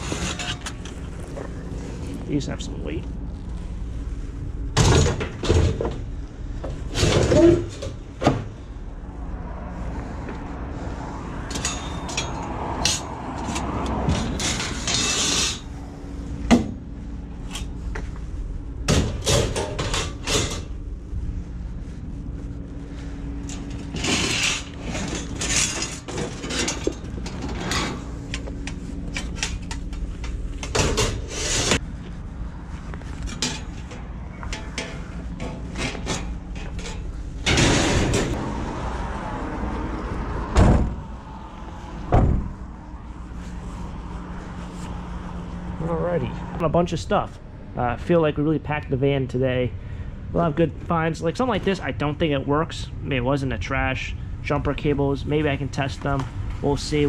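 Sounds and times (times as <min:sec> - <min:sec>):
metal shelving rattling and clanking: 0:00.0 - 0:00.8, 0:04.8 - 0:06.0, 0:06.7 - 0:08.5, 0:11.5 - 0:15.7, 0:18.9 - 0:20.8, 0:23.4 - 0:31.8, 0:33.3 - 0:38.4.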